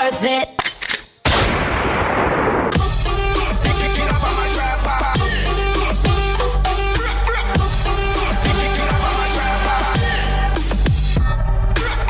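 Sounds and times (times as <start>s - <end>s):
dance music: 2.8s - 12.0s.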